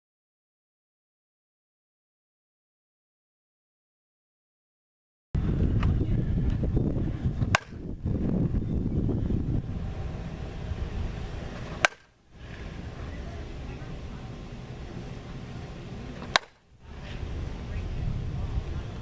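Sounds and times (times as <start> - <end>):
low outdoor rumble: 5.4 - 19.0
bat cracking softball: 7.4 - 8.0, 11.4 - 12.9, 16.0 - 16.7.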